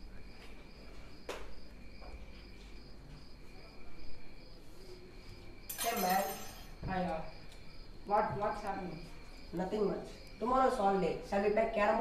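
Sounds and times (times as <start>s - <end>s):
insects chirping trill: 0.0s - 12.0s.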